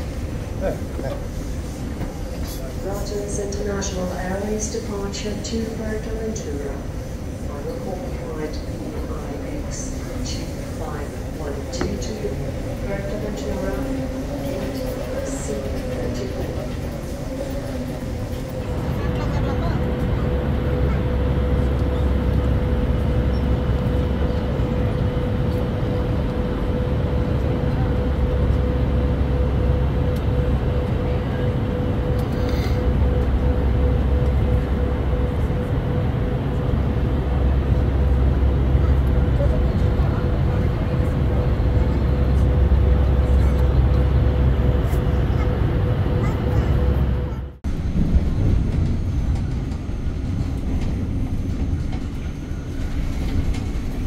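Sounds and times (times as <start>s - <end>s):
jet engine and airflow rumble: 0.0s - 54.0s
steady whine: 0.0s - 54.0s.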